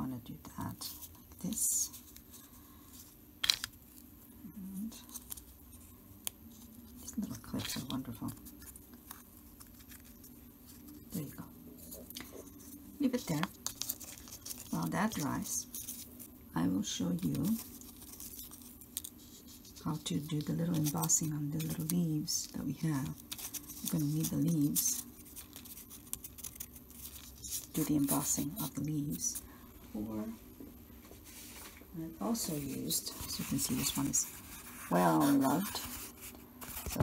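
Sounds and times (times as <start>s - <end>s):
low steady hum: 0.0s - 37.0s
paper rustling: 6.5s - 11.2s, 11.8s - 29.4s, 31.0s - 37.0s.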